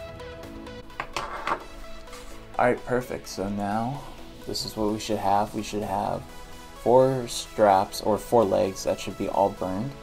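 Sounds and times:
electronic music: 0:00.0 - 0:10.0.

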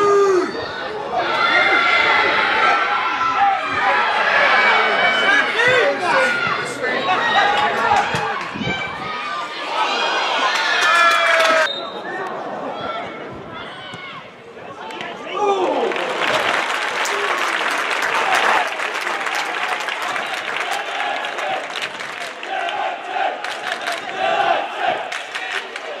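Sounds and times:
stadium crowd cheering: 0:00.0 - 0:26.0
crowd clapping: 0:10.5 - 0:11.7, 0:15.6 - 0:26.0.

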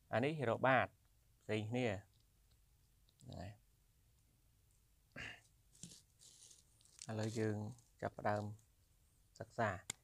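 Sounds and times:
person speaking: 0:00.0 - 0:03.7, 0:05.1 - 0:10.0.

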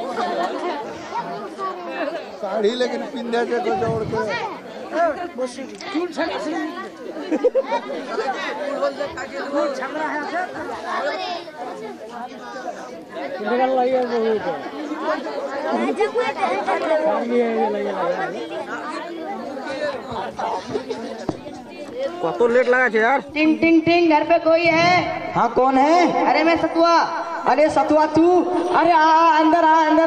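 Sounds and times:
indistinct chatter: 0:00.0 - 0:30.0.

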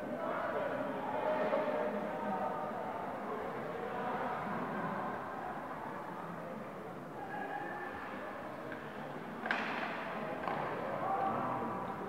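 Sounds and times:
murmur of spectators: 0:00.0 - 0:12.0
hockey stick clacking puck: 0:09.4 - 0:10.8.

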